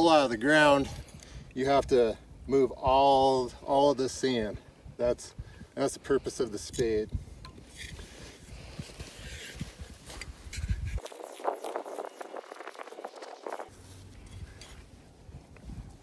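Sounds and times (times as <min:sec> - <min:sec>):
shovel scraping sand: 0:07.6 - 0:15.0.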